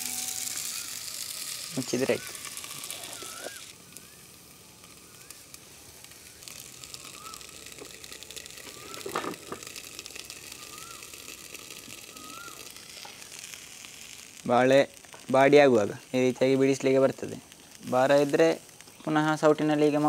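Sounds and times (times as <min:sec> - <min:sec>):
steady faint hiss: 0:00.0 - 0:20.0
bird whistling: 0:00.4 - 0:01.2, 0:01.9 - 0:04.4, 0:05.0 - 0:05.5, 0:06.2 - 0:07.6, 0:08.6 - 0:09.4, 0:10.3 - 0:11.2, 0:12.0 - 0:12.8.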